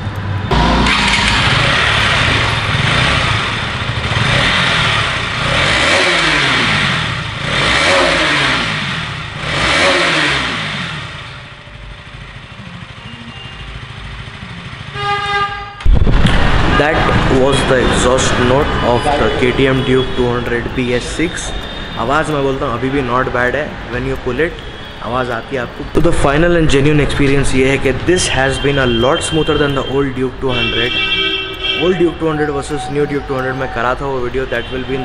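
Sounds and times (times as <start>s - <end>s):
motorcycle engine revving: 0.4s - 35.0s.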